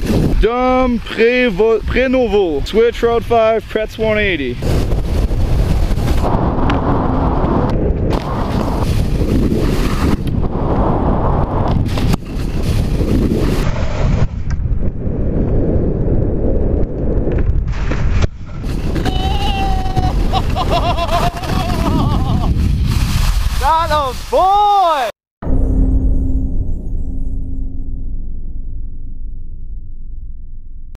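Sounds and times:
wind buffeting microphone: 0:00.0 - 0:24.4
skis sliding over snow: 0:08.2 - 0:10.3, 0:11.8 - 0:14.0, 0:17.7 - 0:25.1.

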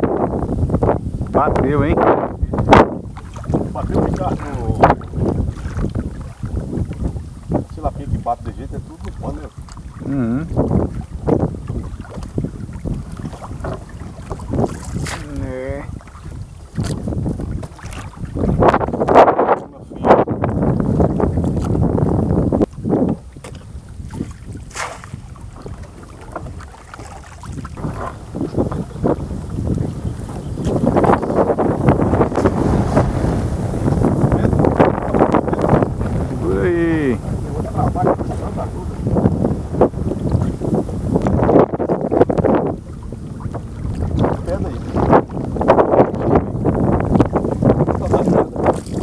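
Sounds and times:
water against small boat: 0:00.0 - 0:49.0
wind buffeting microphone: 0:00.0 - 0:49.0.

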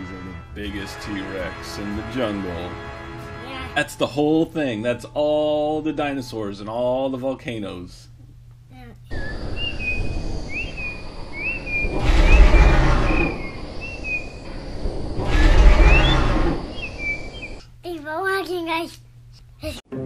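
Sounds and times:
bird chirping: 0:09.1 - 0:17.7
steady rushing noise: 0:09.2 - 0:17.6.

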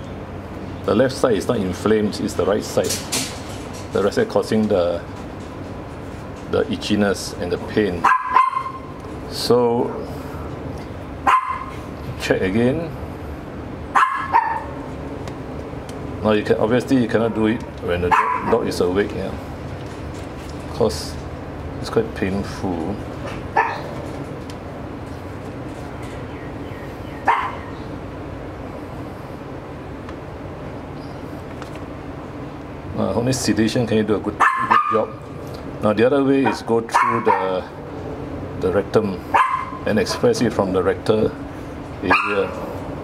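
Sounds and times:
dog yelping: 0:08.0 - 0:09.0, 0:11.2 - 0:11.8, 0:14.0 - 0:14.8, 0:18.1 - 0:18.7, 0:23.5 - 0:24.0, 0:27.2 - 0:27.8, 0:34.4 - 0:35.2, 0:36.4 - 0:37.6, 0:39.3 - 0:39.9, 0:42.1 - 0:42.6.

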